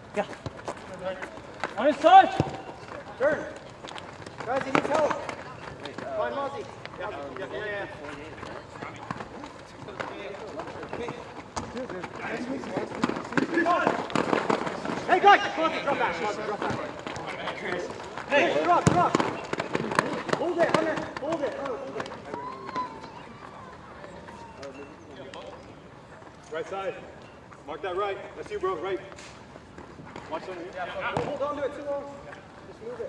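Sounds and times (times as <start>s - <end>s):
ball being kicked: 0.3s - 3.1s, 18.4s - 22.9s, 31.1s - 31.5s
players shouting: 12.3s - 24.9s.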